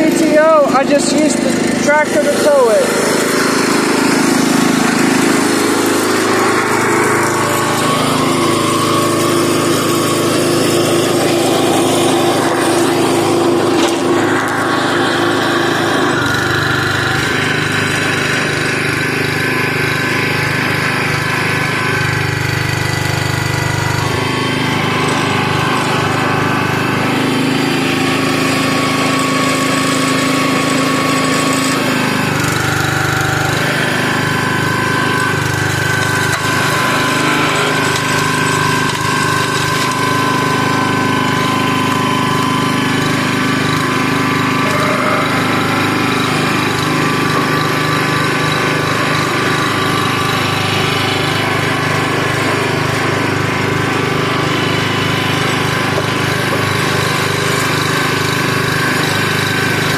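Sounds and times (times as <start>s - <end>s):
small gas engine running: 0.0s - 59.9s.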